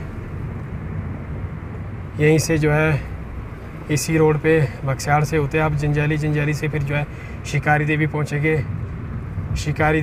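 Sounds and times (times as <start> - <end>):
car engine and road noise hum: 0.0 - 10.0.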